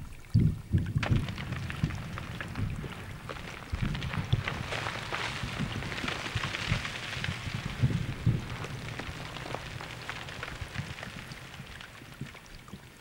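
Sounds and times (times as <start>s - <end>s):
dense crackling clicks: 0.8s - 13.0s
low rumble: 1.0s - 12.8s.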